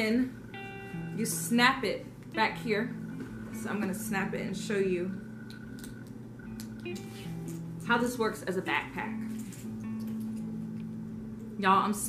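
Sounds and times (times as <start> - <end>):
soft plucked guitar music: 0.0 - 12.0.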